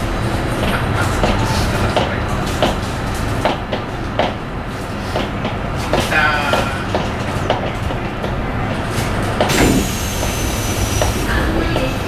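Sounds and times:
train rumble: 0:00.0 - 0:12.0
rail-joint clicks: 0:09.0 - 0:11.2.

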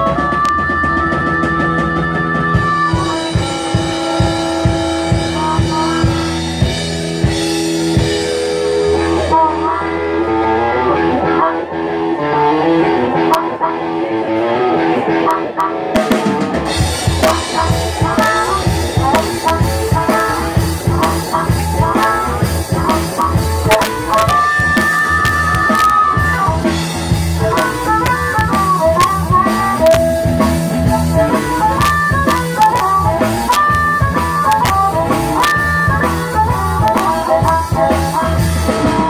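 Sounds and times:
blues-rock band playing: 0:00.0 - 0:39.0
harmonica: 0:00.2 - 0:06.7.

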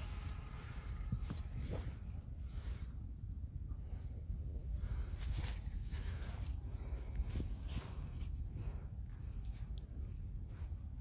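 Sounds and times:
leaves and branches rustling: 0:00.0 - 0:11.0
low microphone rumble: 0:00.0 - 0:11.0.

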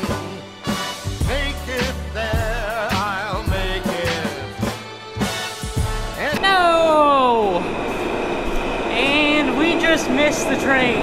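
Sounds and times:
subway train noise: 0:06.2 - 0:11.0.

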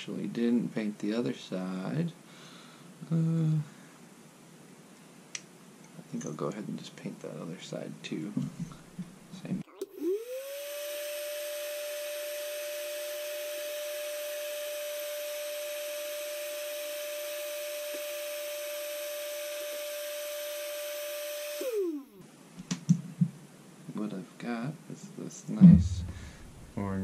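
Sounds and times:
heat gun fan whine: 0:09.9 - 0:22.2
heat gun switch: 0:20.5 - 0:22.1.

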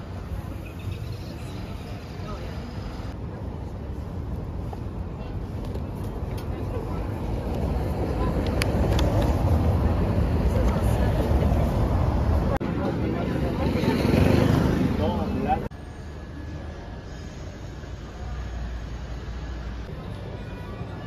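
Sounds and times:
background chatter of voices: 0:00.0 - 0:21.0
street traffic rumble: 0:00.0 - 0:21.0.

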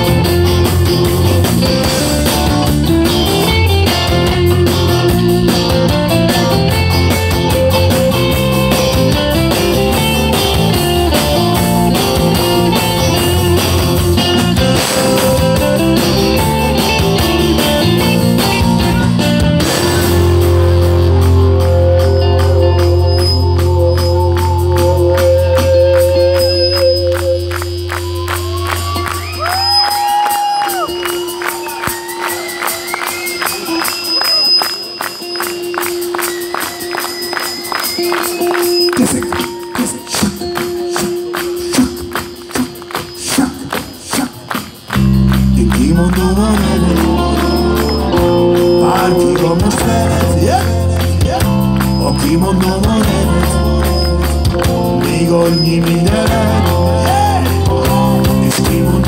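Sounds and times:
gliding bending high guitar notes: 0:00.0 - 0:43.3, 0:44.4 - 0:59.0
live rock band playing: 0:00.0 - 0:59.0.

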